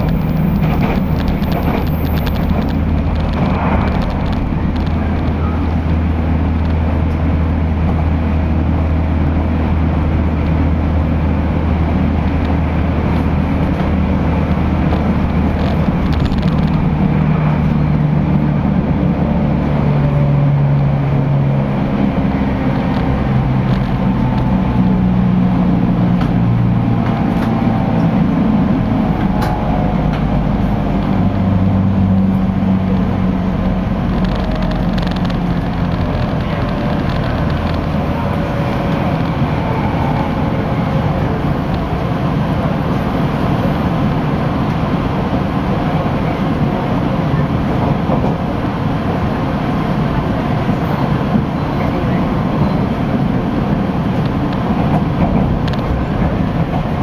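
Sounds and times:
train hum shifting pitch: 0.0 - 57.0
train wheels rumbling on rail: 0.0 - 57.0.

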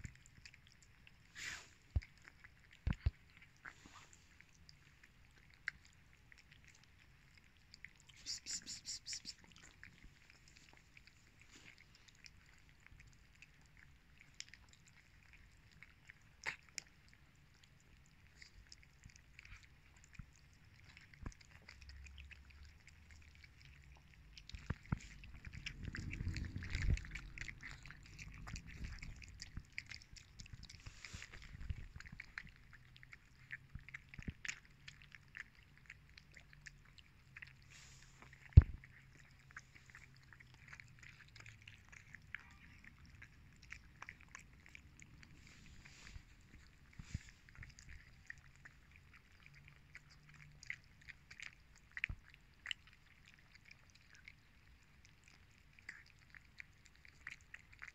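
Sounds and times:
cats chewing and lapping: 0.0 - 57.9.

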